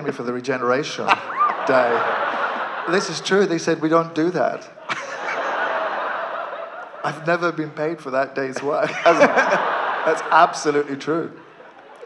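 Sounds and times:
large audience laughing: 0.0s - 7.7s, 8.4s - 12.0s.

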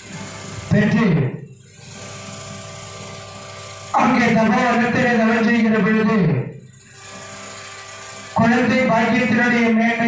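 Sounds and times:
man's amplified voice: 0.7s - 1.5s, 3.9s - 6.6s, 8.4s - 10.0s.

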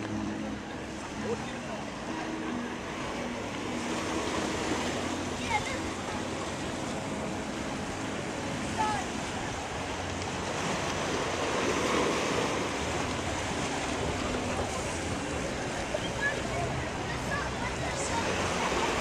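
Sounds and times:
wind and sea water rushing: 0.0s - 19.0s.

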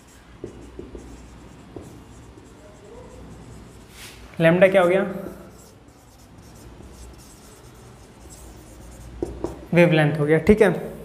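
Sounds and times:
marker writing on whiteboard: 0.0s - 9.8s.

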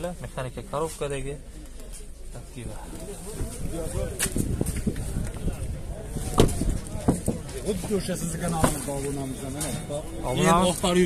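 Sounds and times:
man speaking: 7.6s - 11.0s.

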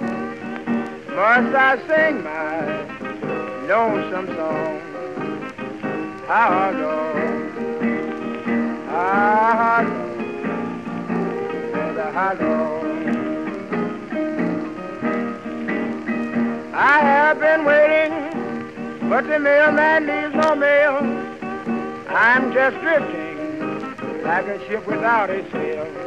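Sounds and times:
guitar single notes bending: 0.0s - 26.0s
record surface crackle: 0.0s - 26.0s.

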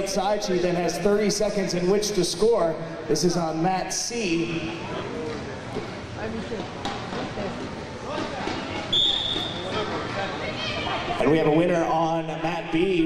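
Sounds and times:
crowd noise: 0.0s - 13.0s
short high whistle blast: 8.9s - 9.6s.

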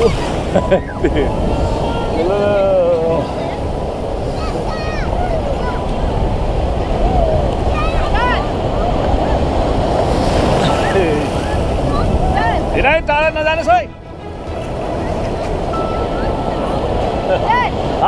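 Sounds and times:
surf breaking: 0.0s - 18.0s
wind buffeting microphone: 0.0s - 18.0s.

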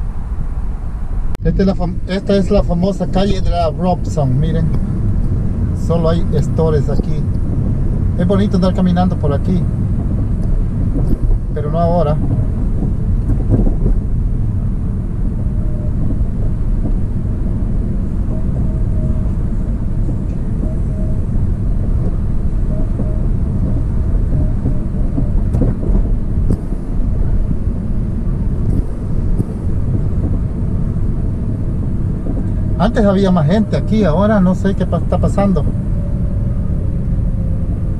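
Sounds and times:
car engine and tyre noise: 0.0s - 37.9s.

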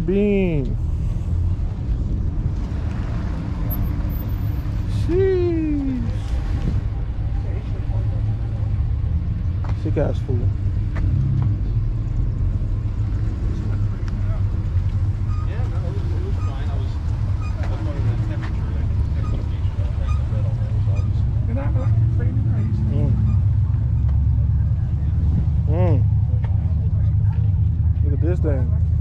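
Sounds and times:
steady low rumble: 0.0s - 4.1s
people talking in background: 13.3s - 29.0s.

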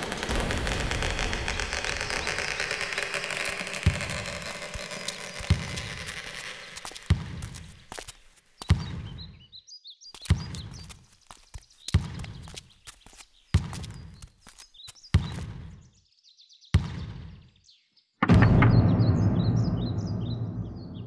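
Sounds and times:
deep booming thuds: 0.0s - 4.8s, 18.2s - 21.0s
dense rushing hiss: 0.0s - 7.1s
faint bird chirps: 8.6s - 21.0s.

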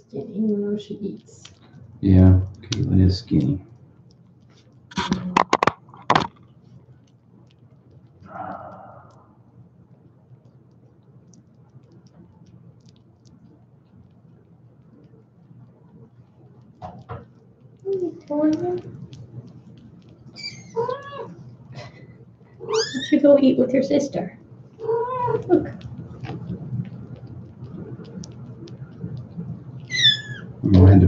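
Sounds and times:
sharp clicks and cracks: 1.2s - 1.8s, 2.4s - 8.3s, 10.3s - 22.6s, 24.7s - 30.0s
faint ticks: 6.4s - 22.6s, 24.5s - 30.6s.

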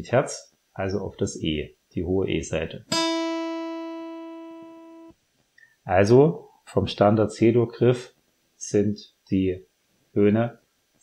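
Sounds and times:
acoustic guitar string plucked: 2.9s - 5.1s.

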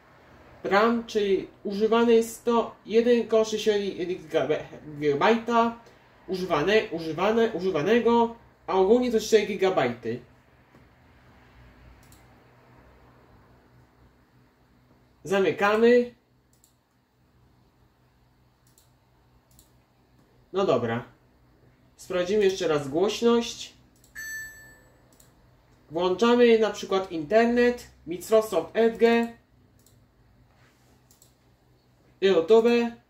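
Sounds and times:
low steady hum: 0.0s - 33.0s
computer mouse clicks: 11.9s - 12.4s, 16.5s - 17.0s, 18.6s - 20.3s, 23.9s - 24.2s, 25.1s - 25.8s, 28.9s - 30.0s, 31.0s - 31.4s.

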